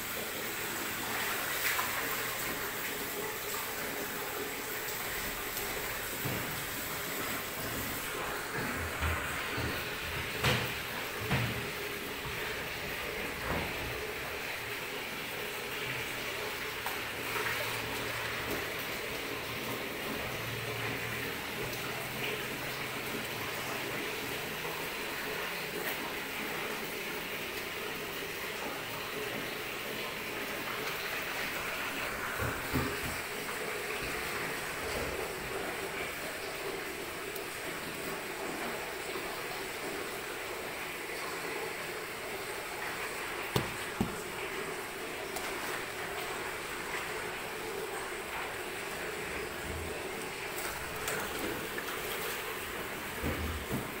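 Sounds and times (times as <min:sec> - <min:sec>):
steam and boiling water rushing: 0:00.0 - 0:54.0.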